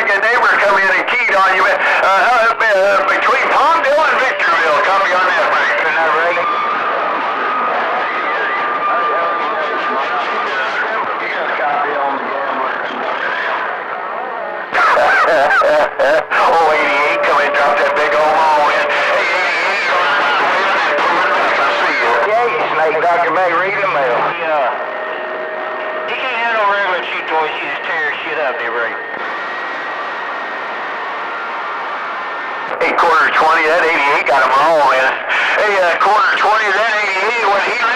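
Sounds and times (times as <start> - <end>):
garbled radio voices: 0.0 - 37.9
radio static: 0.0 - 37.9
steady radio whistle: 0.1 - 13.8, 14.7 - 37.9
radio receiver hiss: 0.2 - 6.4.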